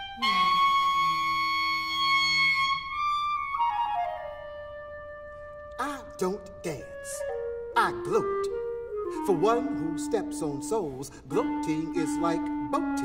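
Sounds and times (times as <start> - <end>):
clarinet with chamber ensemble: 0.0 - 13.0.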